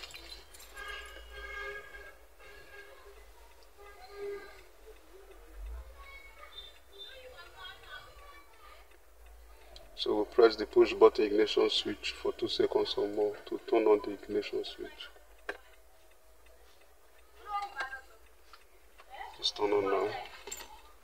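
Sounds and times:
faint background speech: 0.4s - 21.0s.

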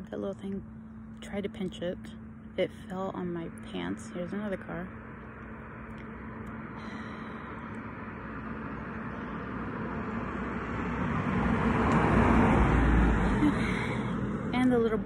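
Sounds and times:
car passing: 4.9s - 15.0s.

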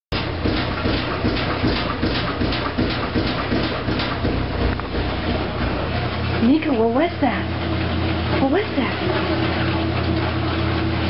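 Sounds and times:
washing machine knocking: 0.1s - 11.0s
washing machine low hum: 0.1s - 11.0s.

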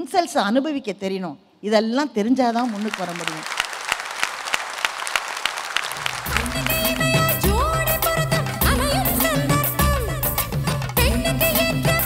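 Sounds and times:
audience applause: 2.6s - 7.5s.

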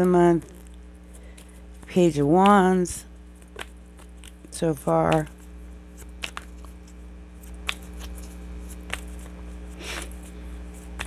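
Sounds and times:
low electrical hum: 0.0s - 11.0s
cards snapping: 3.4s - 11.0s
riffle of sliding cards: 5.9s - 11.0s.

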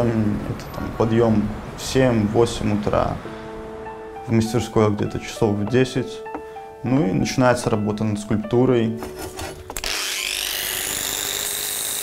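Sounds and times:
angle grinder whining: 9.7s - 12.0s.

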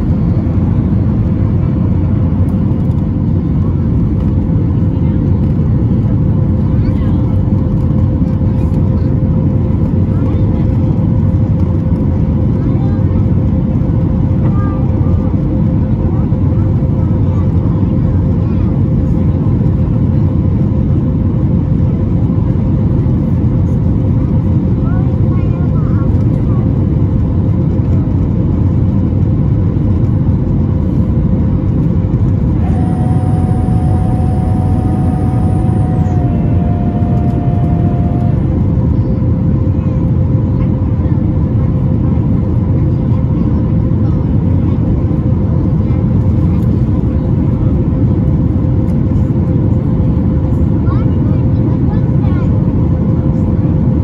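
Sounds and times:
airplane cabin engine rumble: 0.0s - 54.0s
steady hum tone: 31.8s - 39.8s.

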